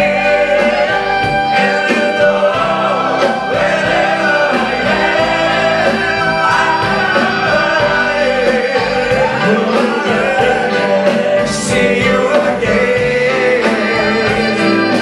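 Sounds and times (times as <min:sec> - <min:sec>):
group of voices singing: 0:00.0 - 0:15.0
live band with guitar: 0:00.0 - 0:15.0.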